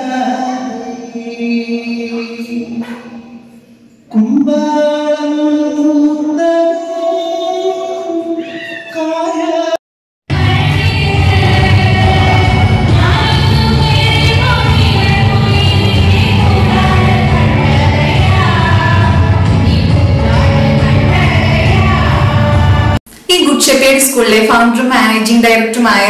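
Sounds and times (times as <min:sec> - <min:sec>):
woman singing through pa system: 0:09.6 - 0:26.0.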